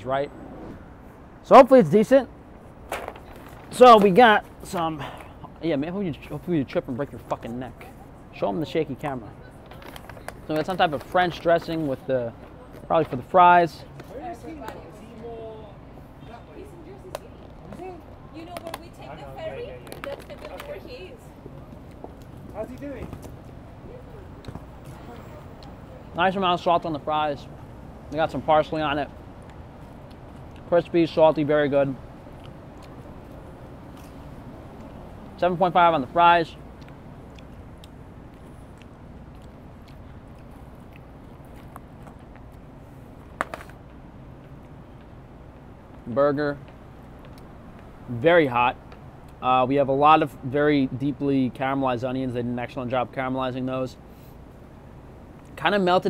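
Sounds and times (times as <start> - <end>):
low street rumble: 0.0 - 56.0
person chewing fries: 36.8 - 42.6.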